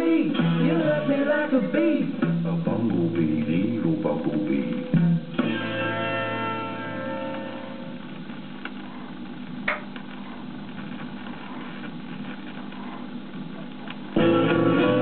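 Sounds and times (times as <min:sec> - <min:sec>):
vinyl surface noise: 0:00.0 - 0:15.0
guitar chord ringing: 0:04.6 - 0:08.0, 0:14.2 - 0:15.0.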